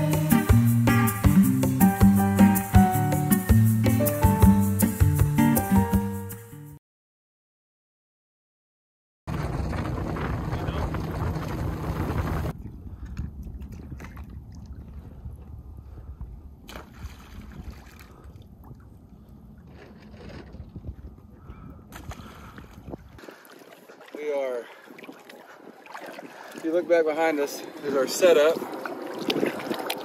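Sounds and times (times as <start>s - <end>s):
water around a boat: 9.3s - 30.0s
wind: 9.3s - 30.0s.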